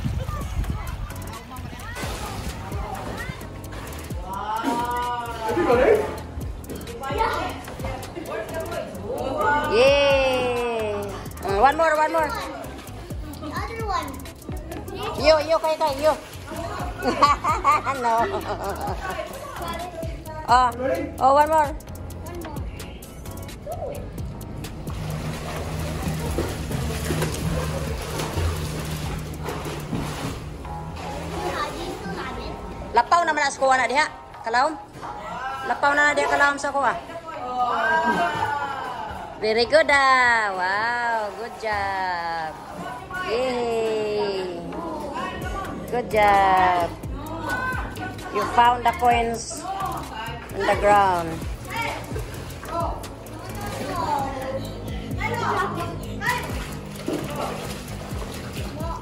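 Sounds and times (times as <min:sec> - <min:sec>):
water splashing in pool: 0:00.0 - 0:08.9, 0:10.0 - 0:20.5, 0:24.2 - 0:33.8, 0:34.9 - 0:59.0
music playing: 0:00.0 - 0:59.0
children shouting and squealing: 0:23.5 - 0:24.3, 0:37.4 - 0:39.4.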